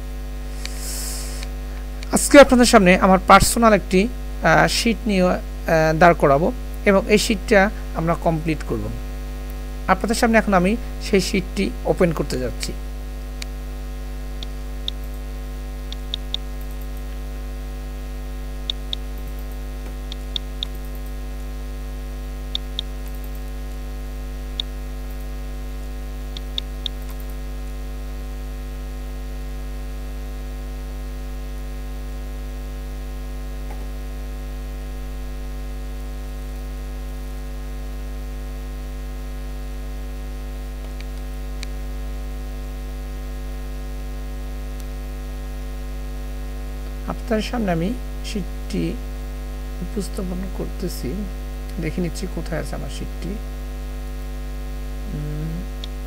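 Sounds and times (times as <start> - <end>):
electrical mains hum: 0.0 - 56.0
computer mouse clicks: 18.7 - 21.2, 22.5 - 23.5, 26.3 - 27.4.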